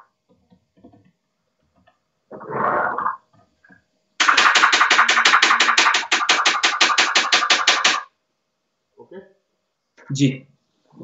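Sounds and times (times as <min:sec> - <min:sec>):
rapid sharp knocks: 0:04.2 - 0:08.1.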